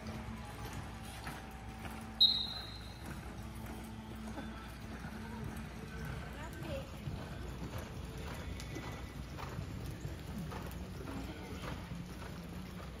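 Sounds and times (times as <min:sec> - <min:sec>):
horse hoofbeats on dirt: 0:00.0 - 0:13.0.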